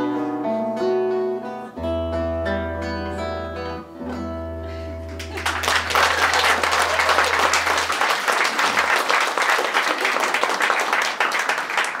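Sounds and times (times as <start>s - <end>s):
audience applauding: 5.1s - 12.0s.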